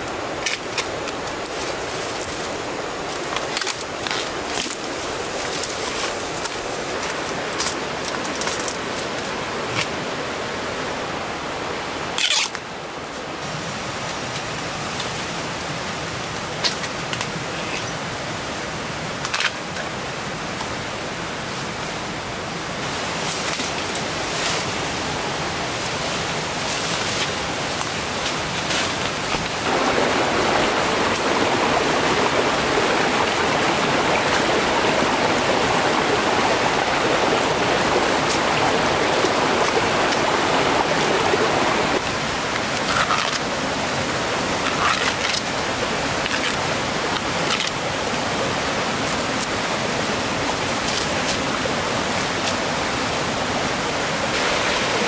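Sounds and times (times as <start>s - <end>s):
water rushing in rocky stream: 0.0s - 55.0s.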